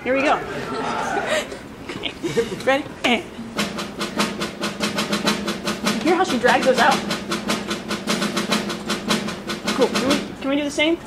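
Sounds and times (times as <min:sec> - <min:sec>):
snare drum triplets: 0:03.4 - 0:10.4.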